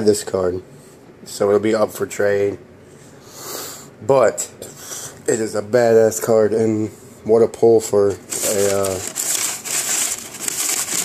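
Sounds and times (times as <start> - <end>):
card rubbing and rustling: 8.2 - 11.0.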